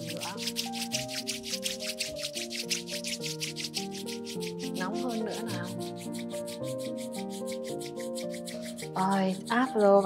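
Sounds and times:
background music with sustained tones: 0.0s - 10.0s
palms rubbing together: 0.0s - 10.0s.

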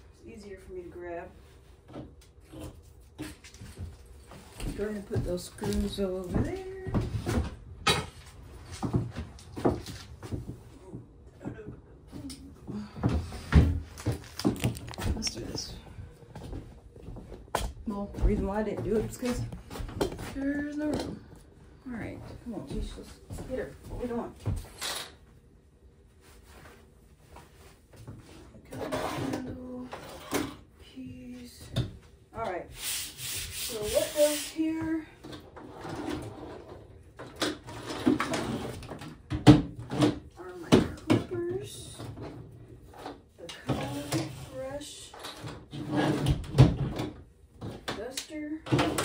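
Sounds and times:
items knocking and clattering: 12.7s - 15.6s, 37.2s - 41.4s.

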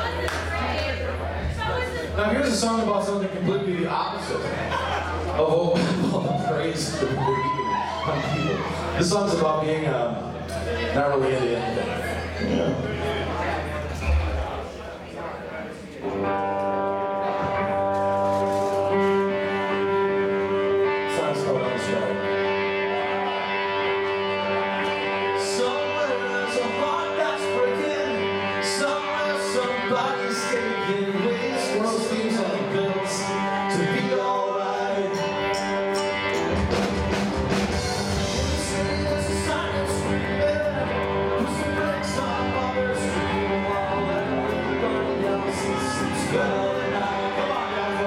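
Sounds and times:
rock band playing: 0.0s - 14.7s, 16.0s - 48.0s
electric guitar and keyboard chords: 16.0s - 48.0s.

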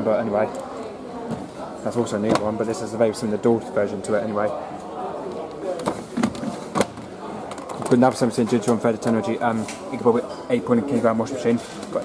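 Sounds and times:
low background voices: 0.0s - 12.0s.

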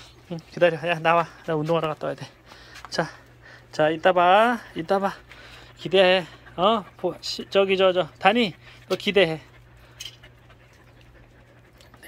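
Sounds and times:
dogs panting: 0.0s - 12.0s
steady low hum: 0.0s - 12.0s.

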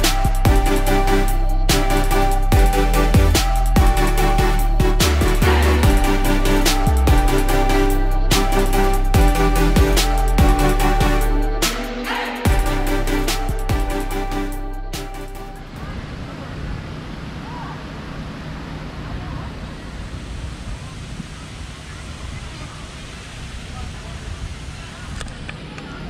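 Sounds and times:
music track: 0.0s - 15.8s.

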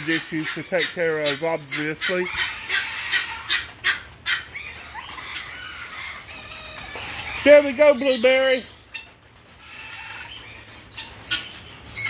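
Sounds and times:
harsh bird calls: 0.0s - 12.0s.

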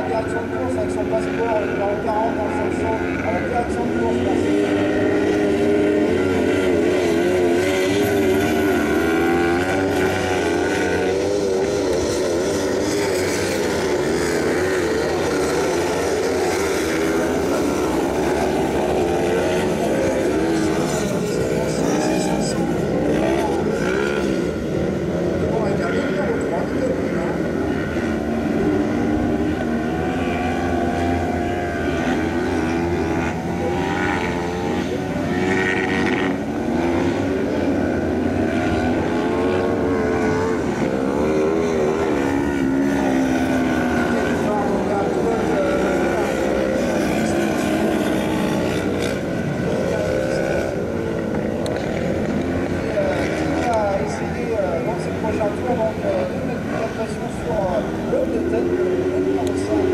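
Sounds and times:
buggy engines revving: 0.0s - 59.9s.

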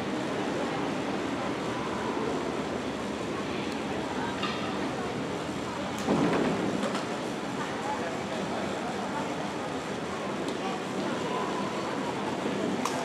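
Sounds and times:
murmur of voices: 0.0s - 13.0s.

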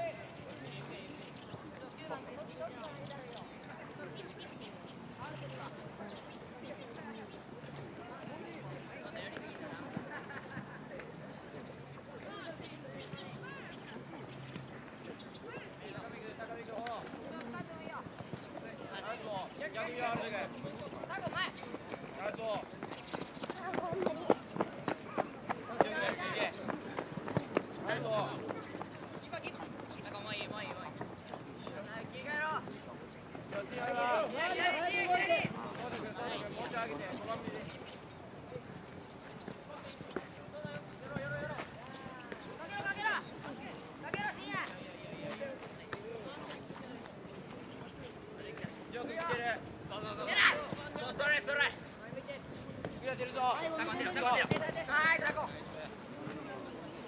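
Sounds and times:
open-air background noise: 0.0s - 57.0s.

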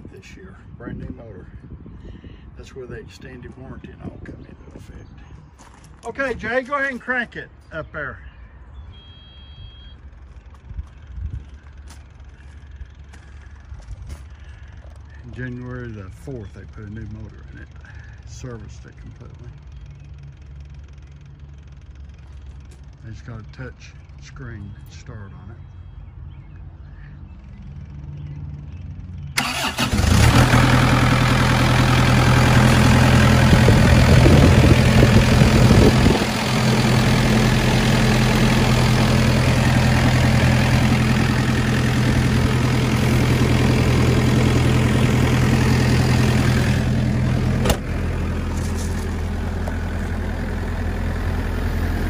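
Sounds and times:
diesel engine idling: 0.1s - 52.0s.

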